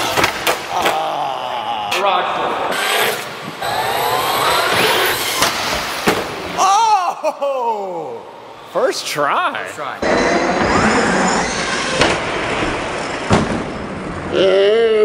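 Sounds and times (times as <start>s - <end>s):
person shouting: 6.6s - 8.4s, 14.3s - 15.0s.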